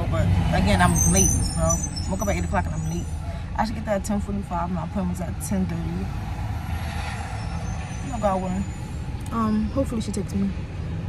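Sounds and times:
car cabin road and engine rumble: 0.0 - 6.7, 7.4 - 11.0.

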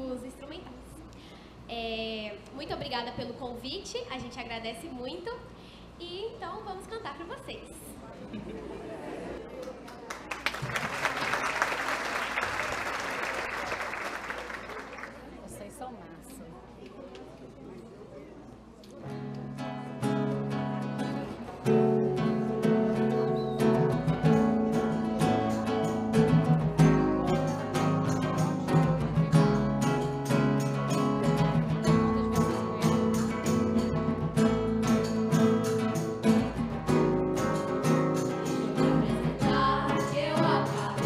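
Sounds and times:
acoustic guitar strumming: 19.1 - 41.0
conga: 22.1 - 41.0
young female voices singing: 38.6 - 41.0.

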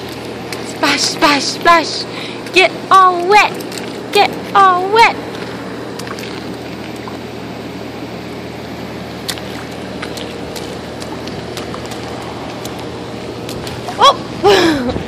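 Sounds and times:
low hum and hiss: 0.0 - 15.0
boots splashing in puddle: 9.2 - 12.8.

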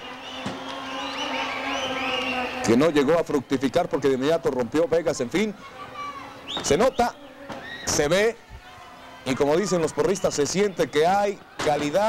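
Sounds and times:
crowd voices shouting: 0.0 - 4.7, 5.4 - 12.0.

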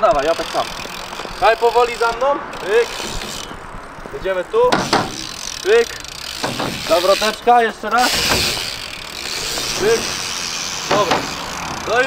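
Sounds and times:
bike tyres rolling: 0.0 - 12.0
sharp knock: 4.7 - 5.3.

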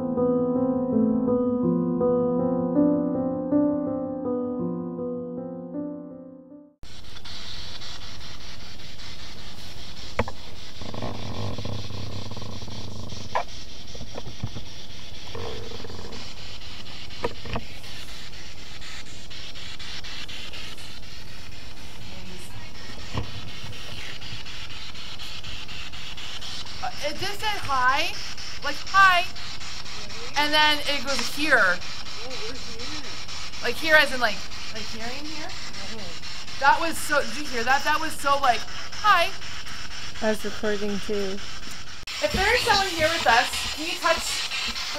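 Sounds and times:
static hiss: 6.8 - 44.9
woman's voice: 22.0 - 23.2, 26.8 - 29.4, 30.3 - 31.8, 33.6 - 39.4, 42.2 - 44.9.

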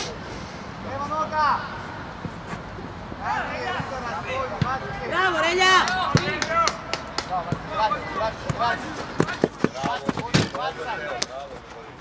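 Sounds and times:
people shouting: 4.7 - 6.9.

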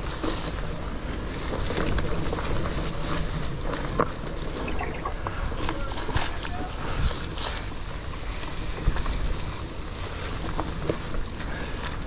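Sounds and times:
bike tyres crunching leaf litter: 0.0 - 12.0.

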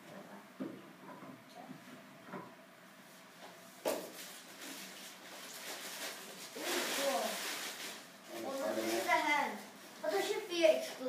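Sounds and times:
plastic wrap rustling and crinkling: 3.9 - 10.4.

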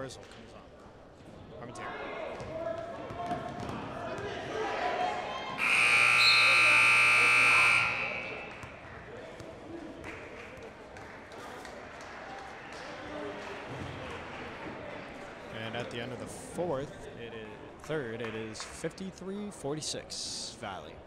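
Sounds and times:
court noise: 0.0 - 21.0
crowd voices: 0.8 - 18.6
scoreboard buzzer: 5.6 - 8.8.

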